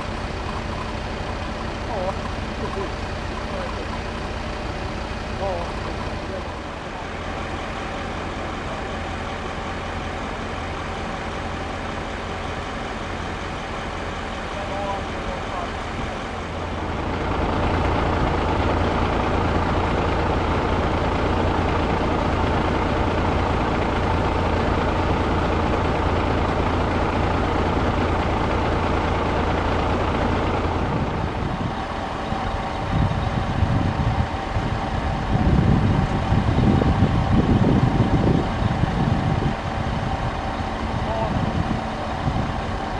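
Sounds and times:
uneven low rumbling: 0:00.0 - 0:42.9
vehicle engines idling: 0:00.0 - 0:42.9.

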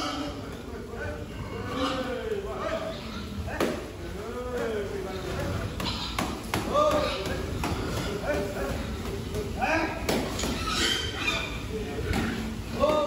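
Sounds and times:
pigs calling: 0:00.0 - 0:03.6, 0:04.6 - 0:12.8.

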